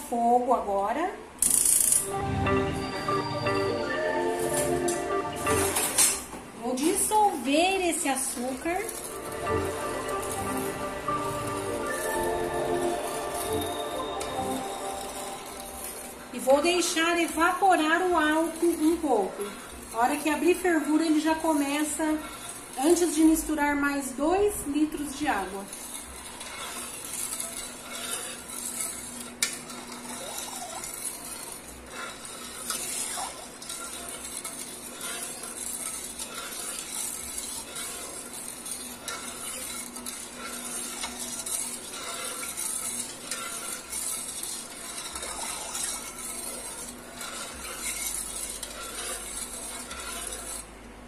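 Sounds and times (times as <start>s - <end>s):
metal spoon stirring in pot: 1.5s - 51.0s.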